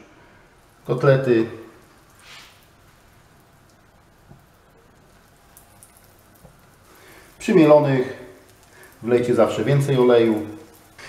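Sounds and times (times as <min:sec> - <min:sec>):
patties sizzling in hot oil: 0:00.1 - 0:11.0
soft crackles and taps: 0:01.6 - 0:07.4, 0:08.4 - 0:09.3.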